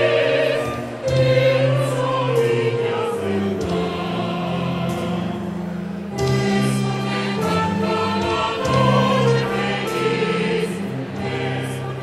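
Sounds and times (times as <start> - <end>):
cello and violin strings: 0.0 - 12.0
mixed choir singing in harmony: 0.0 - 12.0.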